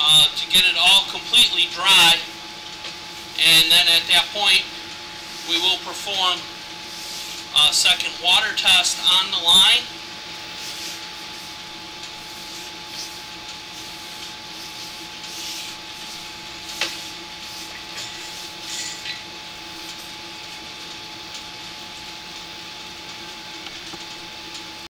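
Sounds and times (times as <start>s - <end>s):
electrical hum and whine: 0.0s - 24.9s.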